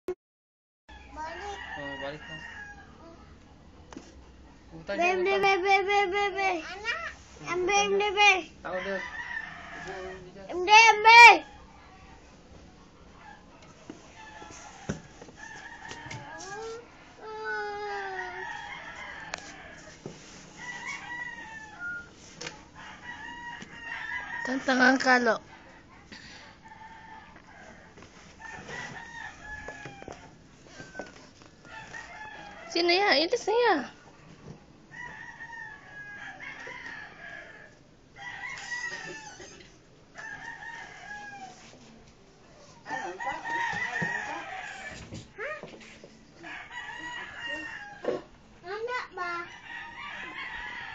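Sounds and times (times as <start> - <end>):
rooster crowing: 0.9 - 3.2, 8.6 - 10.3, 13.2 - 22.1, 22.8 - 24.9, 25.7 - 33.1, 34.9 - 41.8, 42.6 - 45.1, 46.4 - 48.3, 49.2 - 50.9.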